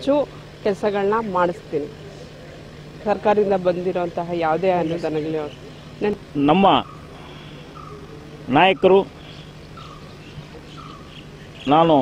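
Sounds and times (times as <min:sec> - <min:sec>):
steady low hum: 0:00.0 - 0:12.0
man speaking: 0:06.2 - 0:06.9, 0:08.2 - 0:09.2, 0:11.7 - 0:12.0.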